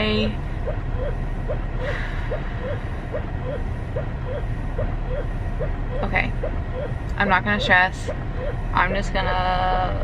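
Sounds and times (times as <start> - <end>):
breast pump motor cycling: 0.0 - 9.0
steady low rumble: 0.0 - 10.0.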